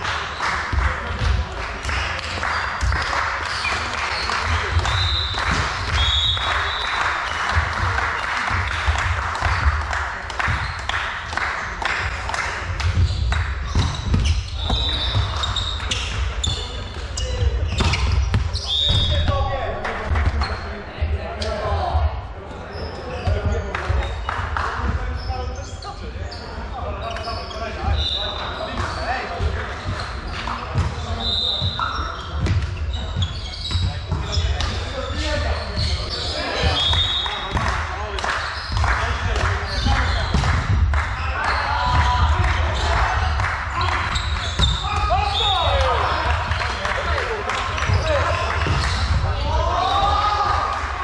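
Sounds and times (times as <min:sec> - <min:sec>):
shoes squeaking on wooden court: 0:12.8 - 0:19.4, 0:22.5 - 0:24.4, 0:25.0 - 0:37.6, 0:38.4 - 0:46.8, 0:47.5 - 0:50.2
players calling out: 0:38.6 - 0:51.0.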